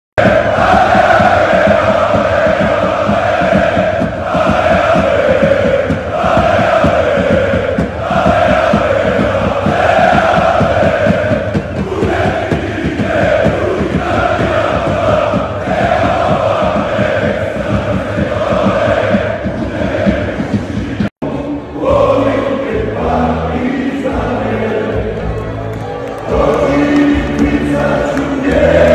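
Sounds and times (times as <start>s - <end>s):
crowd chanting in unison: 0.2s - 28.9s.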